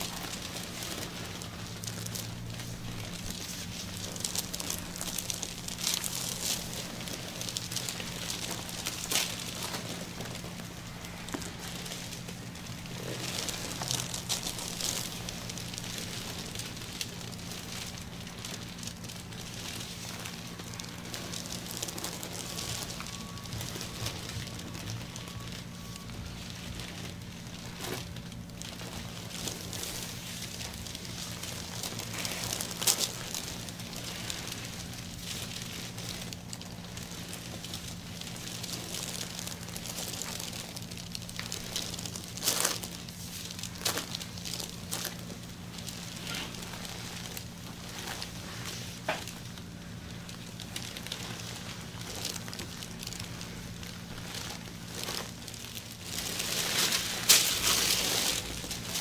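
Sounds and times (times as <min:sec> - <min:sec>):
steady low hum: 0:00.0 - 0:59.0.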